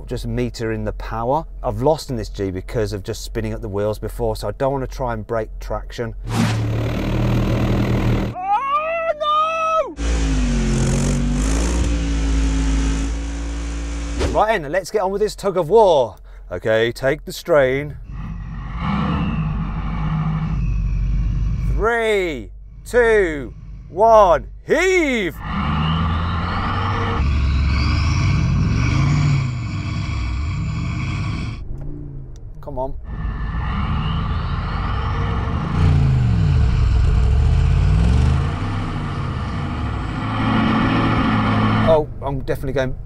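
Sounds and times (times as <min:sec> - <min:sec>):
engines low rumble: 0:00.0 - 0:08.4, 0:10.0 - 0:43.0.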